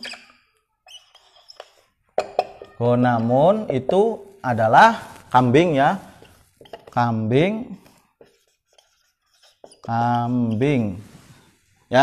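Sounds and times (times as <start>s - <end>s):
whiteboard marker squeaking: 0.0s - 4.0s, 5.1s - 7.0s, 7.8s - 11.4s.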